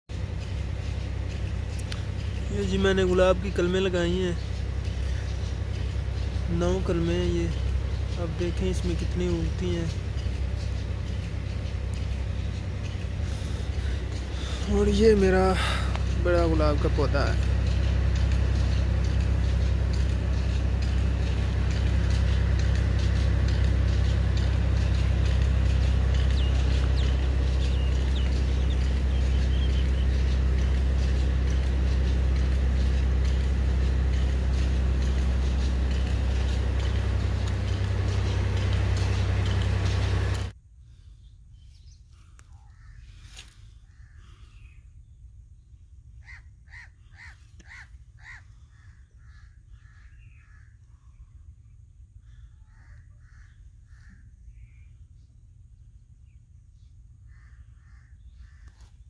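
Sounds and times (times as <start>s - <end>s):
loud low mechanical drone: 0.0s - 59.0s
bird calling repeated notes: 16.0s - 40.4s, 46.2s - 50.8s.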